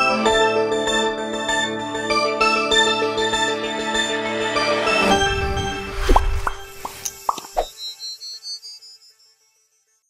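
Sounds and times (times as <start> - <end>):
cartoon plop blips: 6.1 - 7.7.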